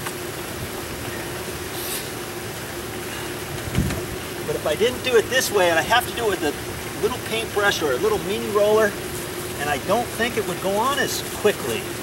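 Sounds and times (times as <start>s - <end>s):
constant low hum: 0.0s - 12.0s
brief hiss: 1.7s - 2.1s.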